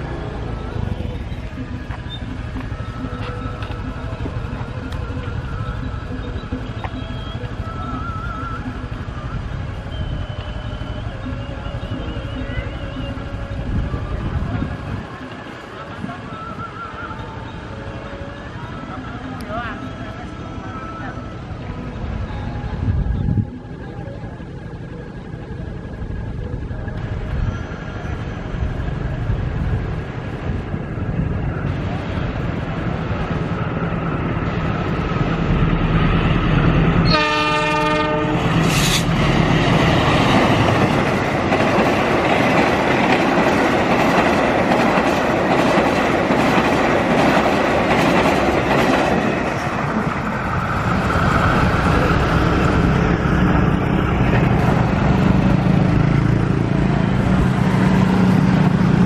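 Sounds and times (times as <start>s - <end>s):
locomotive engine rumbling: 0.0s - 59.0s
train horn blast: 37.0s - 39.2s.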